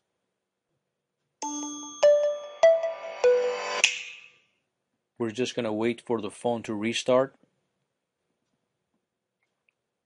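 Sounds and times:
phone startup chime: 0:01.4 - 0:03.8.

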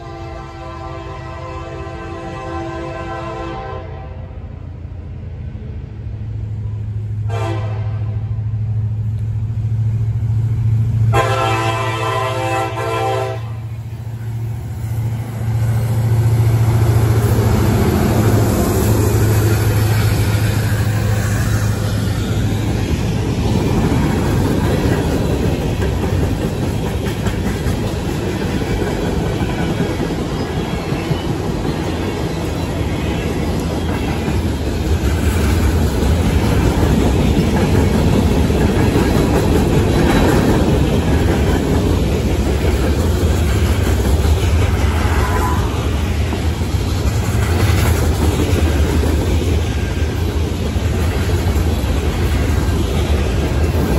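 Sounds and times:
train horn blast: 0:00.0 - 0:04.5, 0:07.2 - 0:08.6, 0:11.0 - 0:13.8
locomotive engine drone: 0:00.0 - 0:53.9
train wheels rumbling on rails: 0:00.0 - 0:53.9.

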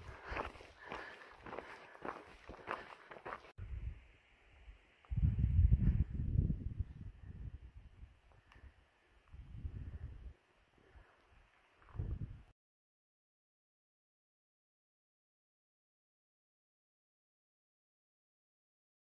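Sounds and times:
footsteps crunching on gravel: 0:00.0 - 0:03.5
low rumbling wind gusts: 0:03.6 - 0:10.4, 0:11.8 - 0:12.5.

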